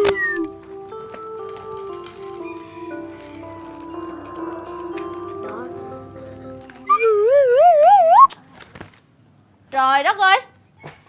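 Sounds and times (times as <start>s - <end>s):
sitcom background music: 0.0s - 8.1s
gliding whistle-like sound effect: 6.9s - 8.3s.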